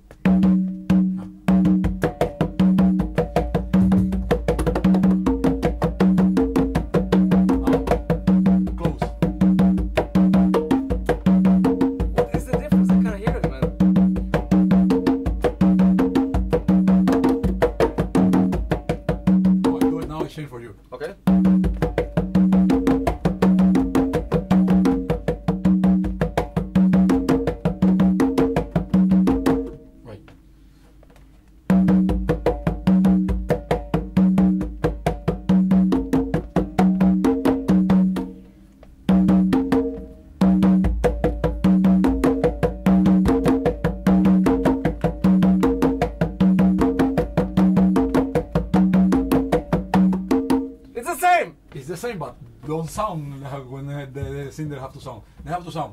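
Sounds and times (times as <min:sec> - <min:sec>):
congas playing: 0:00.0 - 0:55.9.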